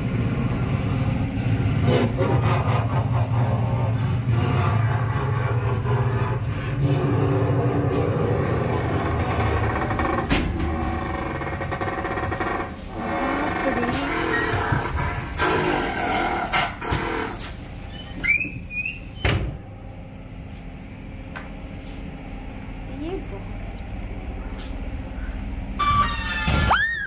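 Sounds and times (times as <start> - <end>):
low rumbling drone: 0.0 - 18.1.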